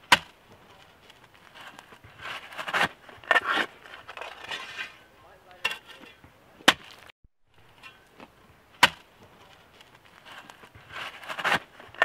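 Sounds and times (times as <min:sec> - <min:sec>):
metal shovel scraping gravelly soil: 0:00.0 - 0:12.0.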